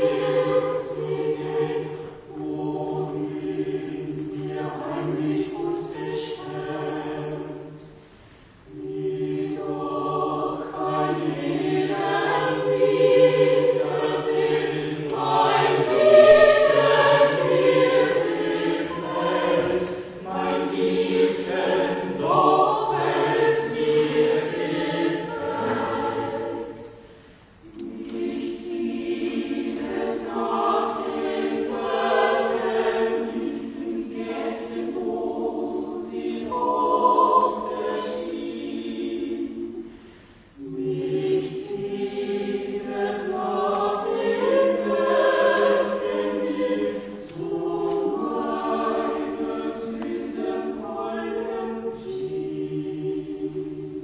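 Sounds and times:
choir singing a cappella: 0.0s - 54.0s.

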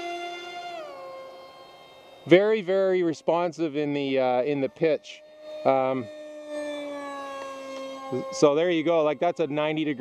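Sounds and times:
electric model jet motor whining: 0.0s - 10.0s.

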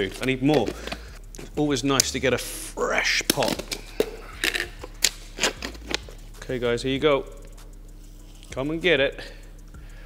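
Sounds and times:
plastic lid crackles and clicks: 0.2s - 2.1s, 3.2s - 6.1s.

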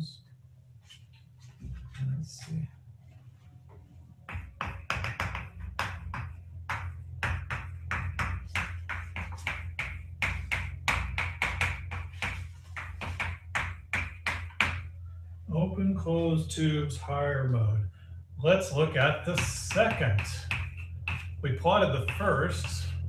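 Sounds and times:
chalk writing on blackboard: 7.6s - 14.8s, 19.4s - 21.4s.

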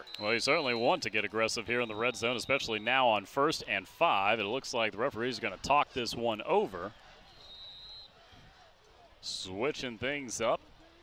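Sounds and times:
referee's whistle blast: 0.0s - 1.1s, 1.7s - 3.1s, 7.3s - 8.2s.

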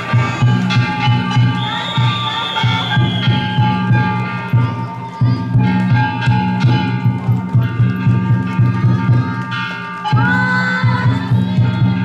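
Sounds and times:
hand gongs ringing: 0.0s - 12.0s
taiko drum beating: 0.0s - 12.0s.

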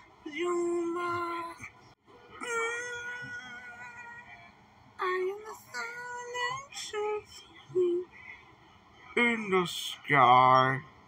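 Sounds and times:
person singing: 2.4s - 8.1s.

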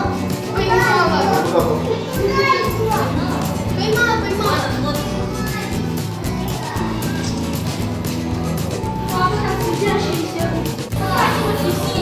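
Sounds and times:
background music: 0.0s - 12.0s
children talking and playing: 0.0s - 12.0s.

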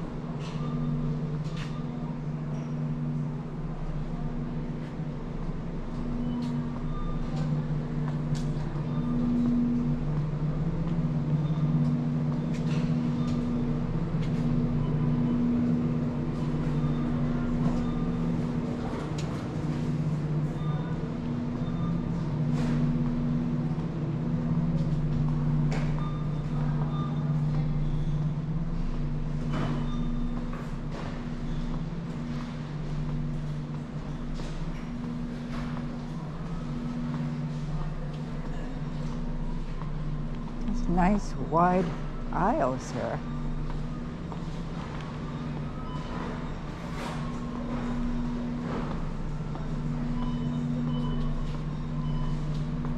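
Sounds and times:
low mechanical hum: 0.0s - 52.9s.

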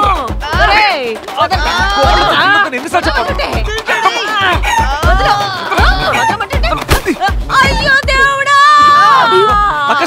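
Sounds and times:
music with low beat: 0.0s - 10.0s
children yelling and shrieking: 3.8s - 6.6s, 7.5s - 10.0s.

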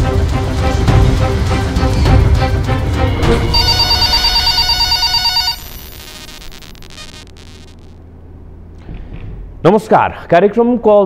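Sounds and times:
electronic telephone ring: 3.5s - 8.0s.

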